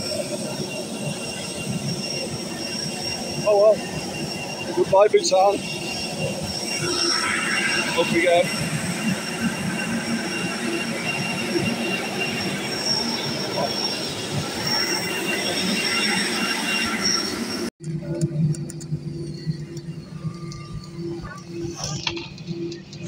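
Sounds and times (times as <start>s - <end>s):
jet turbine whine: 0.0s - 23.0s
airliner cabin hum: 17.2s - 23.0s.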